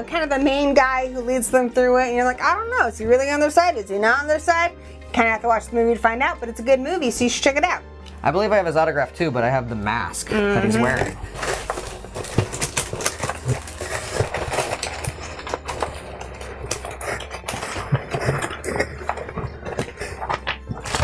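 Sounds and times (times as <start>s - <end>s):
quiet background music: 0.0s - 21.0s
cardboard and paper rustling: 10.6s - 21.0s.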